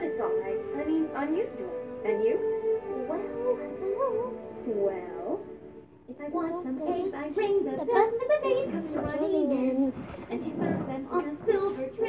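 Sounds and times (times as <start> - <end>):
recorded song with singing voice: 0.0 - 12.0.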